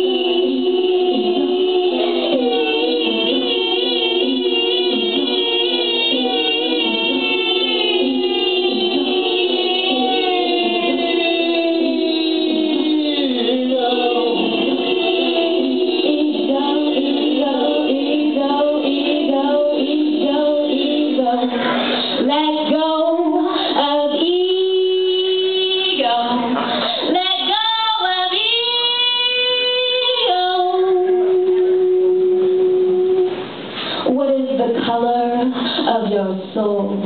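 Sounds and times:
woman singing wordless harmonies: 0.0s - 37.0s.

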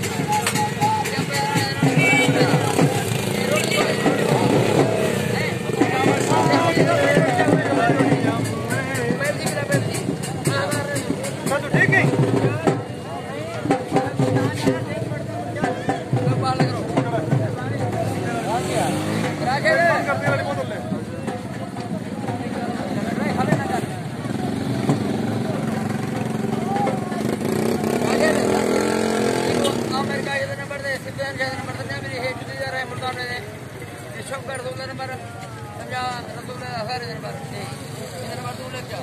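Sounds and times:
crowd talking and calling out: 0.0s - 39.0s.

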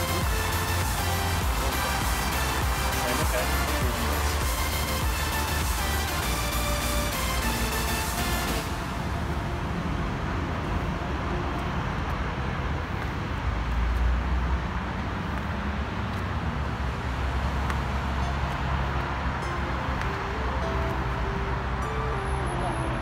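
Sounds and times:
road traffic rumble: 0.0s - 23.0s.

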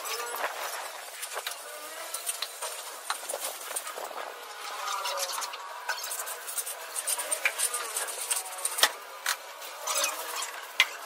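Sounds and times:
hand tools scraping wet screed: 0.0s - 9.0s, 9.6s - 11.0s.

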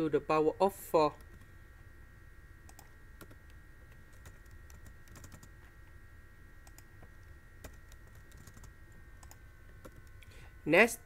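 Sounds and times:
faint high-pitched hum: 0.0s - 11.0s
keyboard typing: 2.7s - 5.6s, 6.6s - 10.3s.

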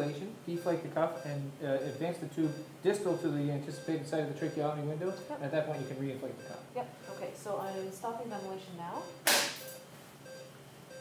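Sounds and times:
faint short beeps: 1.2s - 7.3s.

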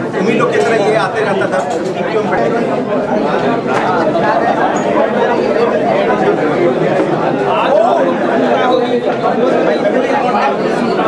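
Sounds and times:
babble of chatter: 0.0s - 11.0s.

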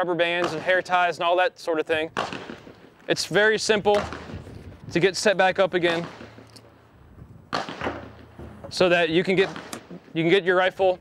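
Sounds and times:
sharp crack: 0.4s - 1.0s, 2.1s - 6.8s, 7.5s - 10.4s.

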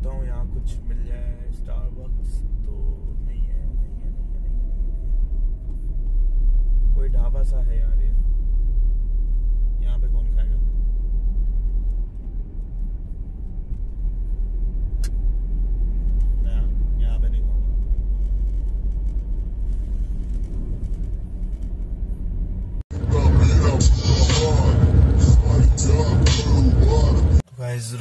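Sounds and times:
road and engine noise in car: 0.0s - 28.0s.

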